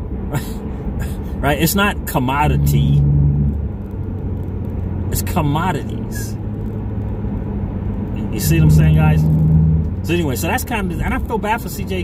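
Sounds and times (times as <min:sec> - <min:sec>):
car engine and tyres rumbling: 0:00.0 - 0:12.0.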